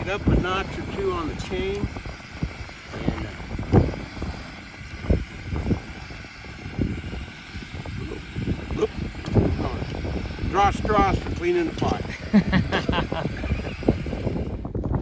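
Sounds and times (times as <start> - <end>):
wind rumble on microphone: 0.0 - 15.0.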